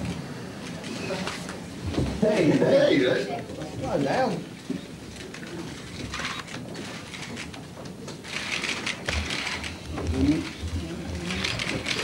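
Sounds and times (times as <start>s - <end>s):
camera shutters clicking rapidly: 8.3s - 9.8s, 11.3s - 12.0s.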